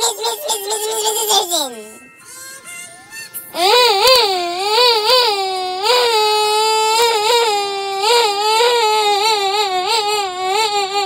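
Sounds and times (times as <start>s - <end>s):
high-pitched wavering cry-like voice: 0.0s - 11.0s.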